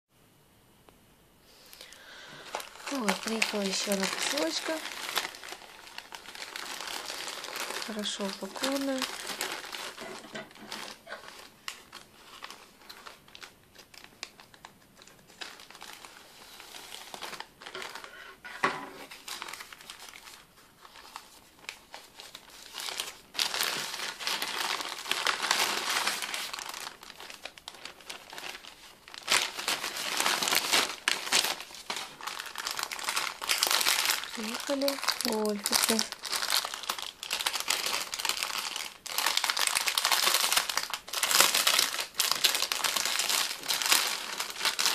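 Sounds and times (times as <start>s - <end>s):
plastic packaging crinkling: 1.6s - 44.9s.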